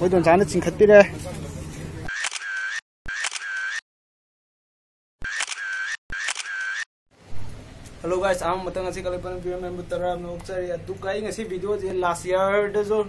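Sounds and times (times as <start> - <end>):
market chatter: 0.0 - 2.2
click followed by whir: 5.2 - 6.8.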